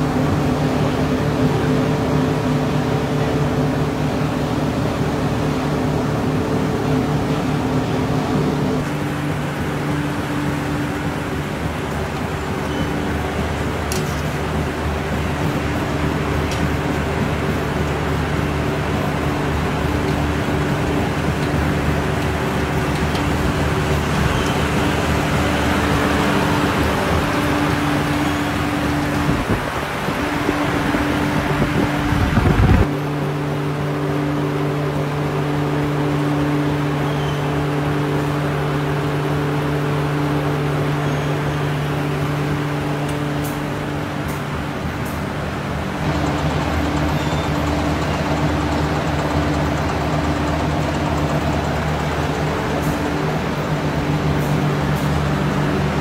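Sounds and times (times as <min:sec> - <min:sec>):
broad rushing noise: 0:00.0 - 0:56.0
factory machinery humming: 0:00.0 - 0:56.0.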